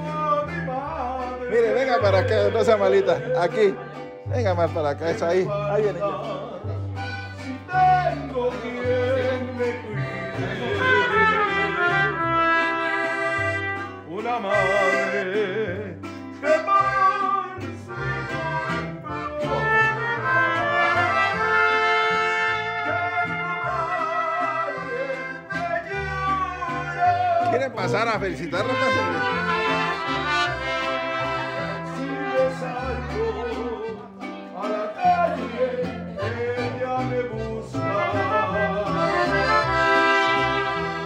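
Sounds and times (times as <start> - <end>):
bass line: 0.0 - 34.3, 35.0 - 41.0
accordion: 0.0 - 41.0
brass: 7.0 - 34.1, 35.0 - 41.0
live band playing: 9.2 - 25.4, 28.0 - 34.6, 37.8 - 41.0.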